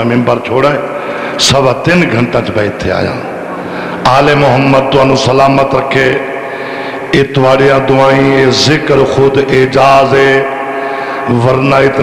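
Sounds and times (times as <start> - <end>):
man chanting through loudspeakers: 0.0 - 12.0.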